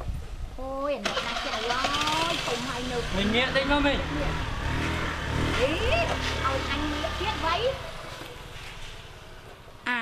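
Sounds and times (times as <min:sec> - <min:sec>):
low engine rumble: 0:00.2 - 0:09.9.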